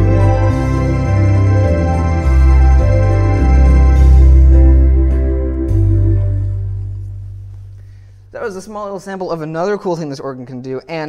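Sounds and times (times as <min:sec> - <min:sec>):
electronic organ bass note: 0:00.0 - 0:07.8
man talking: 0:08.3 - 0:11.0.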